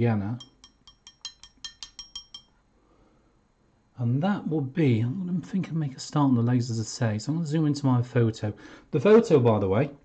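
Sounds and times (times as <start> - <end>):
paintbrush clinking on ceramic: 0.4 - 2.6.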